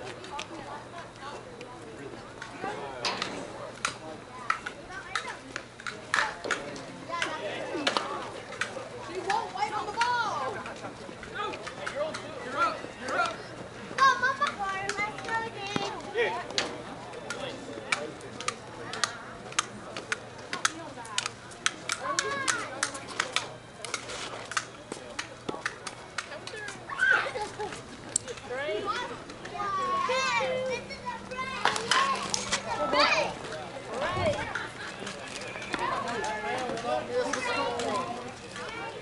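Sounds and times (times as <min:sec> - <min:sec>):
people calling out and chattering: 0:00.0 - 0:39.0.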